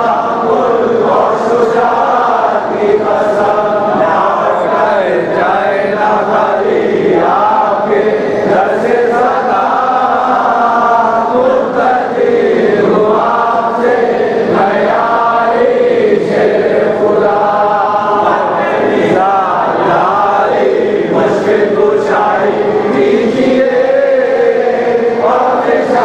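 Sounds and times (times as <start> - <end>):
group of voices chanting: 0.0 - 26.0.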